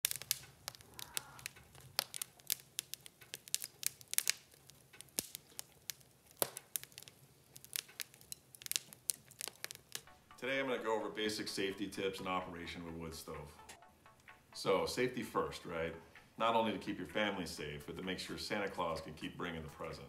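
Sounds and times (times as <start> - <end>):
wood fire crackling: 0.0 - 20.0.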